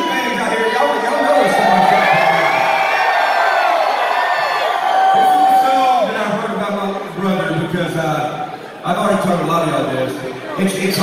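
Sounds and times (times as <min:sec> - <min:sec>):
crowd cheering and yelling: 0:00.0 - 0:09.4.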